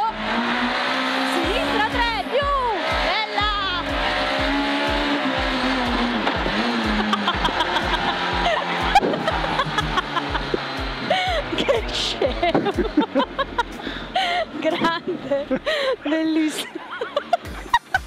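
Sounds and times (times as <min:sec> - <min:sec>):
background music: 0:00.0 - 0:18.0
car engine revving: 0:00.0 - 0:18.0
voice: 0:01.3 - 0:03.9, 0:11.6 - 0:12.7, 0:14.6 - 0:16.8.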